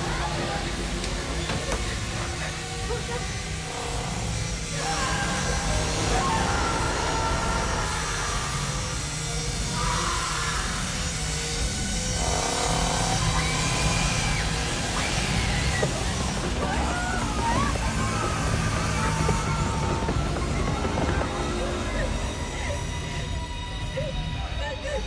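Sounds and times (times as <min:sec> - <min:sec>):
held cries or voices: 0:00.0 - 0:25.0
tense horror music: 0:00.0 - 0:25.0.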